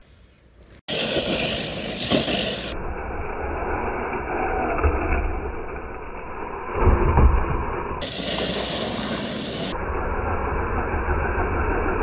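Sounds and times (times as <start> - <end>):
rc car splashing through mud: 0.9 - 2.8, 8.0 - 9.8.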